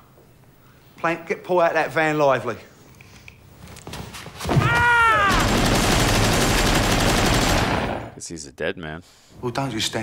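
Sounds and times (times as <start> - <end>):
person shouting: 4.6 - 5.5
rapid automatic gunfire: 5.3 - 8.2.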